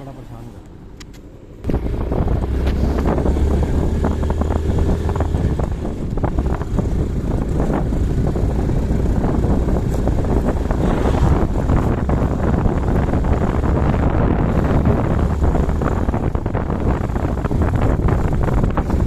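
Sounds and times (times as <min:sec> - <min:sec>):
road noise: 0:00.0 - 0:19.0
motorcycle engine drone: 0:01.6 - 0:19.0
wind buffeting microphone: 0:01.6 - 0:19.0.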